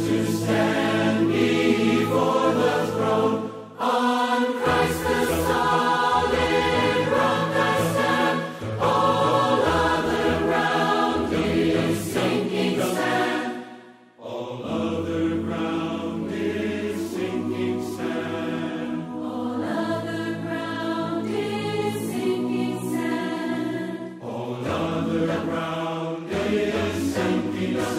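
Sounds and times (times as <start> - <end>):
choir singing held chords: 0.0 - 27.9.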